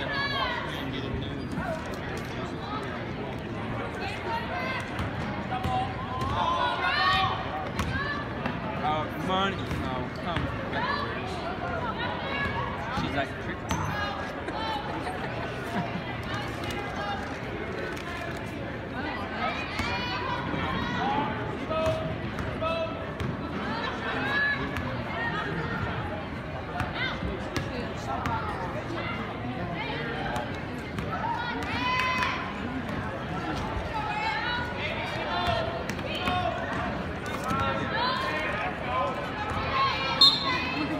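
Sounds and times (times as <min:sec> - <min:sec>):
spectators' voices: 0:00.0 - 0:40.9
sneaker squeaks: 0:40.2 - 0:40.7.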